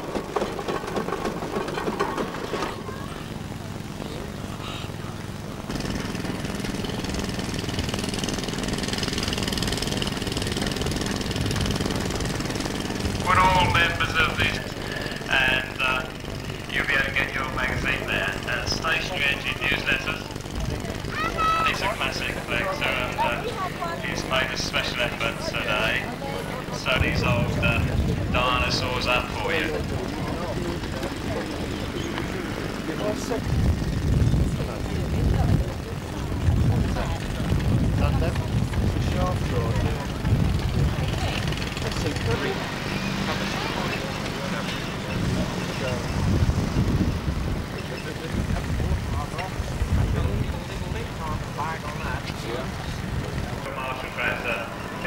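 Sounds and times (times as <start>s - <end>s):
people talking: 1.8s - 5.5s, 11.7s - 33.6s, 34.2s - 46.4s, 47.6s - 55.0s
low rumbling surges: 7.2s - 55.0s.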